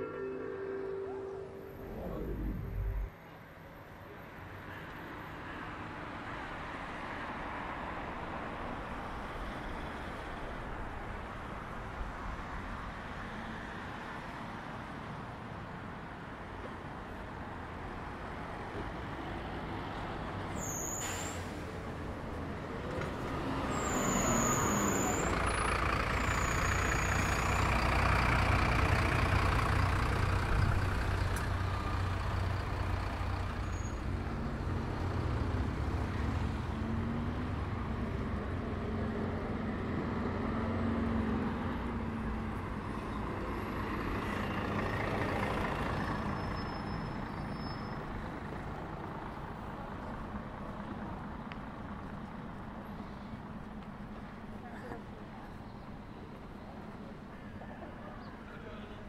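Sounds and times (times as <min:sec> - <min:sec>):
bus passing with engine rumble: 0:00.0 - 0:59.0
brief high squeaks: 0:20.6 - 0:21.6, 0:23.7 - 0:25.4.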